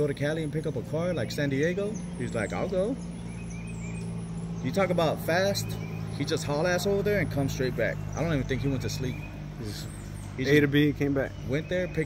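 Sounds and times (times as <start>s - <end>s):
faint bird chirps: 0.0s - 12.0s
low machine hum: 0.0s - 12.0s.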